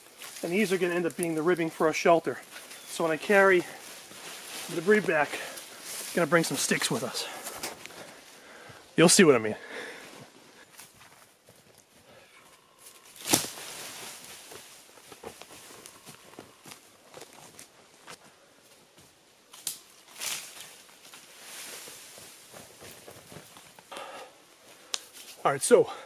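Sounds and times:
footsteps through dry leaves: 0.0 - 8.3, 12.8 - 18.0, 19.9 - 23.6
twig cracking: 12.8 - 13.9, 19.5 - 20.7, 24.8 - 25.4.

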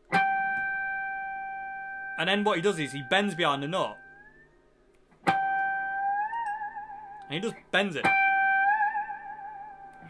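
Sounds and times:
electric guitar harmonic ringing: 0.2 - 4.6, 5.3 - 7.4, 8.0 - 10.0.

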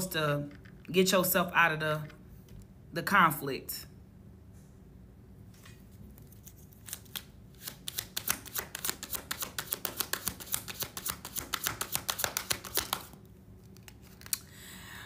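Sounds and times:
cards being shuffled by hand: 5.6 - 14.5.

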